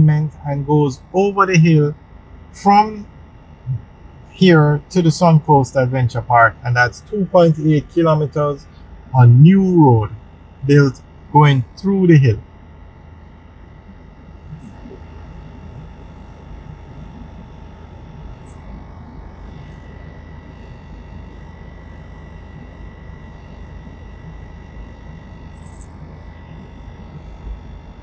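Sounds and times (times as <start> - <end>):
thin steady whine: 0.0 - 28.0.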